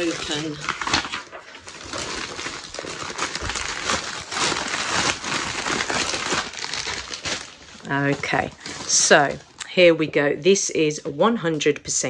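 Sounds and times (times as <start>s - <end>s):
plastic bag tearing: 0.0s - 9.6s
plastic bag crinkling: 0.0s - 9.8s.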